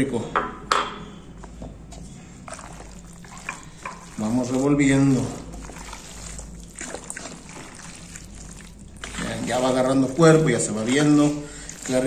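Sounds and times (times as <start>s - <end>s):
wooden spoon stirring thick mixture: 1.8s - 12.0s.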